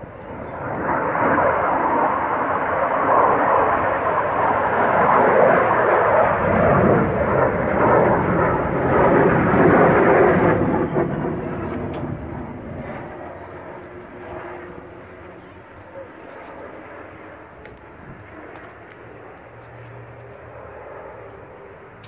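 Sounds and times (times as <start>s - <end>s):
jet aircraft flying past: 0.0s - 22.0s.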